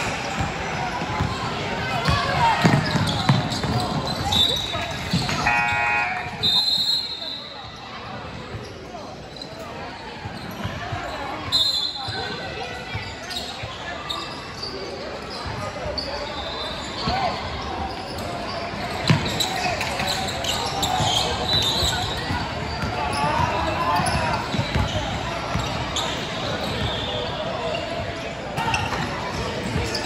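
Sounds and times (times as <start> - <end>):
sneakers squeaking: 0.0 - 30.0.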